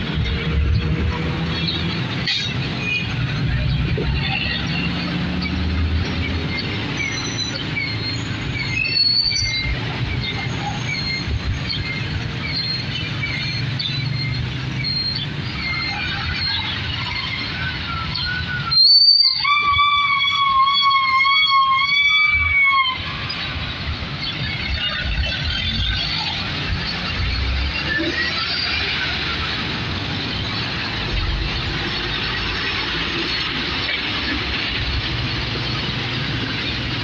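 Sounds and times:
vehicle engines running: 0:00.0 - 0:18.7, 0:23.0 - 0:37.0
vehicle squeal: 0:01.5 - 0:36.7.

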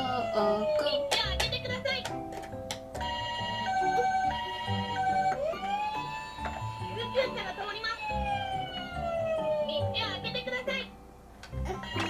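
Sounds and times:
toy electronic siren: 0:00.0 - 0:01.2, 0:03.0 - 0:10.0.

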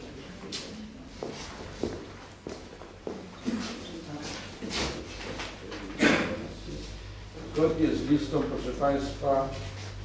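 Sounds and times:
footsteps walking across room: 0:00.0 - 0:05.9, 0:06.6 - 0:10.0.

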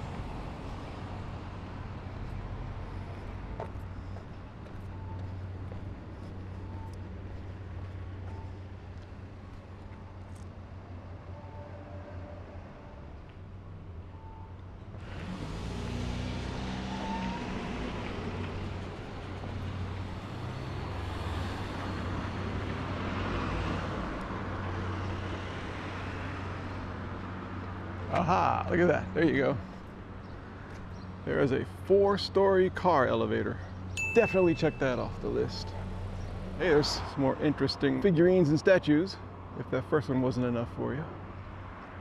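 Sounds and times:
low traffic hum: 0:00.0 - 0:42.0
vehicles passing close by: 0:00.0 - 0:42.0.

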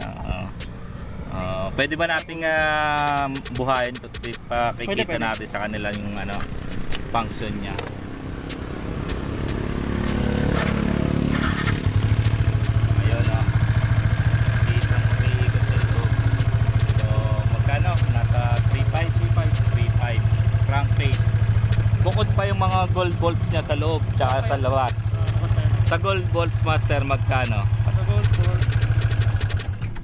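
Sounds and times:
motorcycle engine idling: 0:00.0 - 0:30.0.

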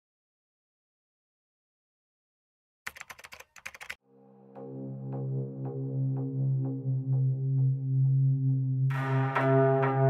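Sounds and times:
rapid keyboard typing clicks: 0:02.9 - 0:04.0.

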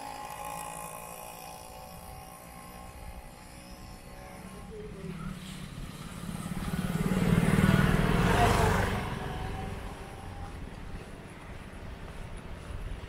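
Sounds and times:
motorcycle passing: 0:00.0 - 0:13.0.

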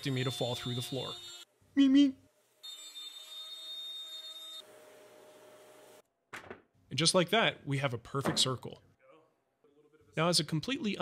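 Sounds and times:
router high-pitched whine: 0:00.0 - 0:01.5, 0:02.6 - 0:04.7.

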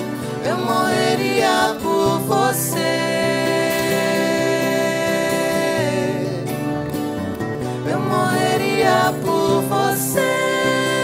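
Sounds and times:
acoustic guitars playing: 0:00.0 - 0:11.0
wordless sung vocal: 0:00.0 - 0:11.0.

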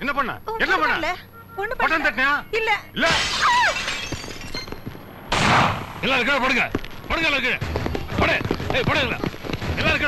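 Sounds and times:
glass window smashing: 0:03.0 - 0:04.7.

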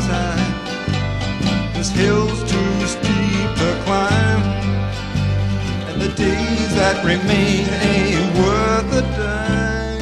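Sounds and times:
plucked acoustic strings: 0:00.0 - 0:10.0
steady bass line: 0:00.0 - 0:10.0.

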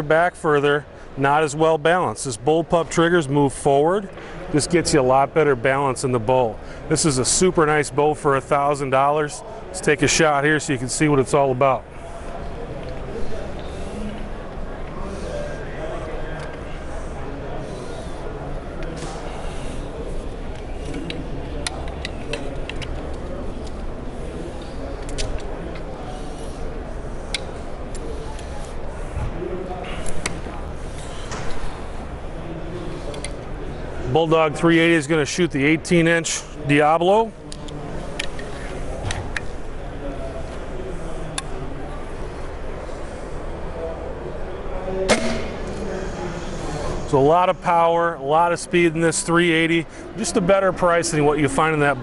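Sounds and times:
din of a busy hall: 0:00.0 - 0:52.0
low background hum: 0:00.0 - 0:52.0.

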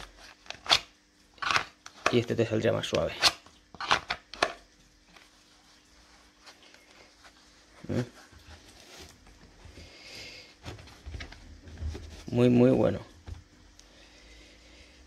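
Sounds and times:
handling rustle: 0:05.1 - 0:09.8.

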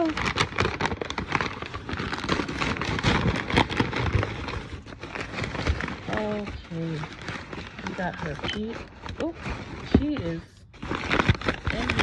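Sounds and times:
packing paper crinkling: 0:00.0 - 0:12.0.

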